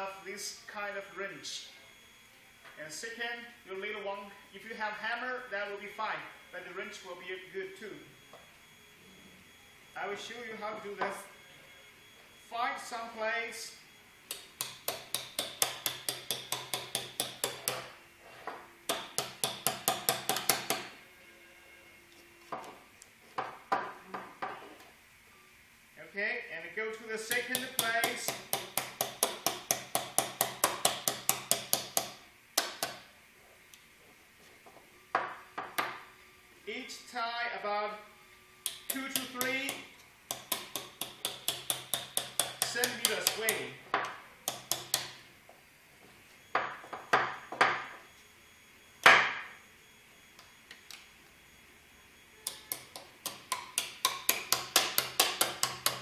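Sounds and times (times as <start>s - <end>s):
wrench tapping metal blade: 27.3s - 32.9s, 38.6s - 43.6s.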